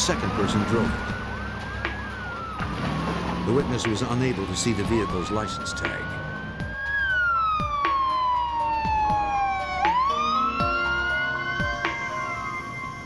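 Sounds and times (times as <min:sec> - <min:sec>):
music: 0:00.0 - 0:13.0
police siren wailing: 0:00.0 - 0:13.0.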